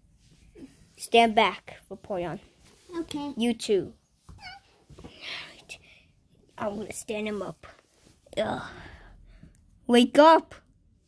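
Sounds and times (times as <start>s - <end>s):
high squeaky voice: 4.4s - 4.7s.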